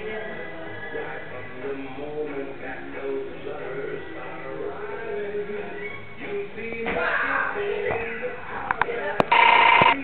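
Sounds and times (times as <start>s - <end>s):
electronic ring: 9.3s - 10.0s.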